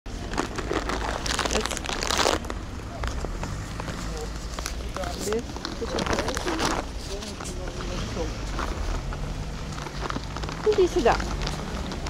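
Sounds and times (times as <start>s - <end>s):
crinkling rustling noise: 0.1s - 12.0s.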